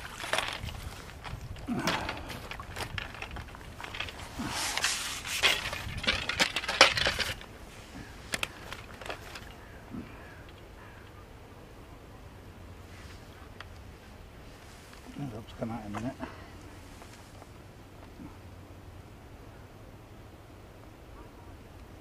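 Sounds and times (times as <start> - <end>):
fishing net handling noises: 0.0 - 11.1.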